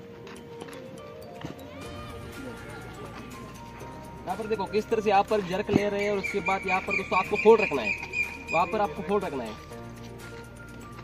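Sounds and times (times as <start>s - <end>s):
background music with light beat: 0.0s - 11.0s.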